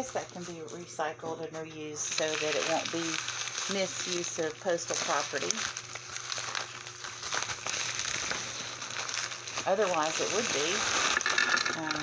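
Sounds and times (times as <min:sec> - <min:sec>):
padded envelope crinkling: 0:00.0 - 0:12.0.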